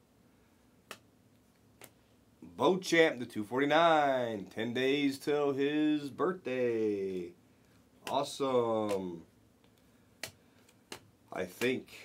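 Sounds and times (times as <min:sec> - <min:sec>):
trading cards flicked clicks: 0:09.7 - 0:11.8.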